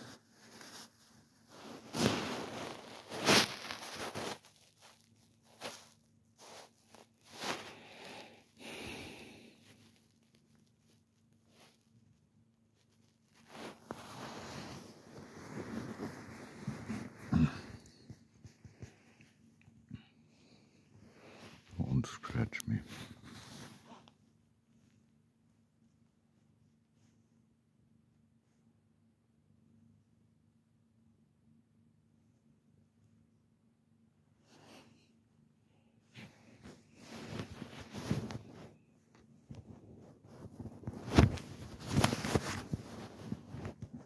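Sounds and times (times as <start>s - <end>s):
hand rubbing cat fur: 0.0s - 27.5s, 36.0s - 44.0s.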